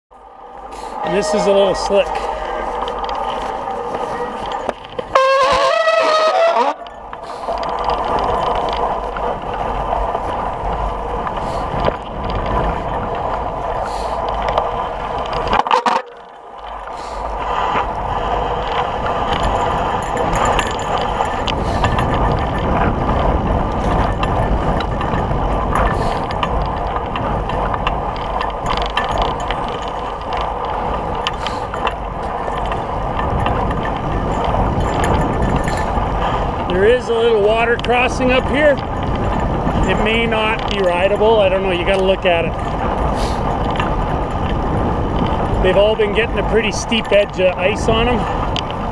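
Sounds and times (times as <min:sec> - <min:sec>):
bicycle tyres rolling: 0:00.1 - 0:48.9
bike rattling over bumps: 0:00.1 - 0:48.9
wavering high-pitched squeal: 0:00.6 - 0:07.6.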